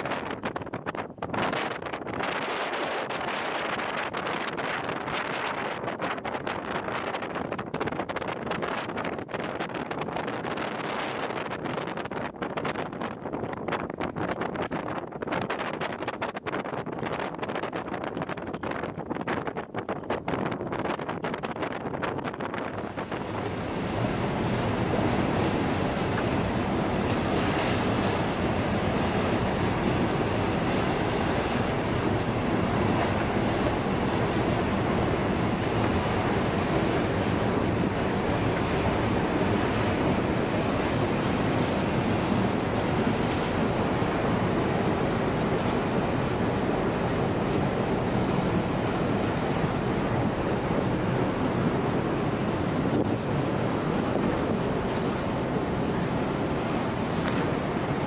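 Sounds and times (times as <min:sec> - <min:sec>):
ship rushing through sea ice: 0:00.0 - 0:16.3, 0:20.2 - 0:58.0
wind on microphone: 0:00.0 - 0:58.0.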